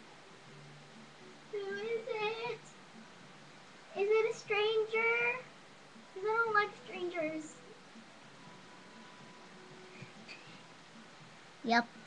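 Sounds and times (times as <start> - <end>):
girl singing wordlessly: 1.5 - 2.7, 3.9 - 7.7.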